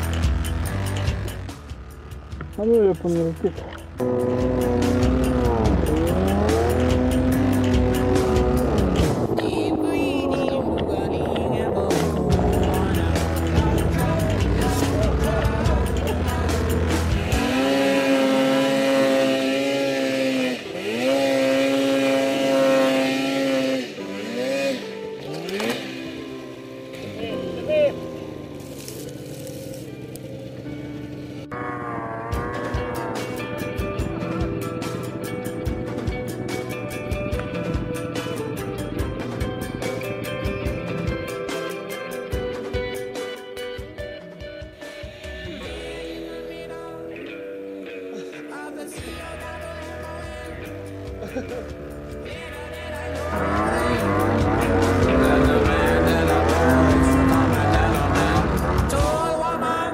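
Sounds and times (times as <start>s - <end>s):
music: 0.0s - 59.9s
snowmobile engine revving: 2.6s - 41.5s, 51.0s - 59.9s.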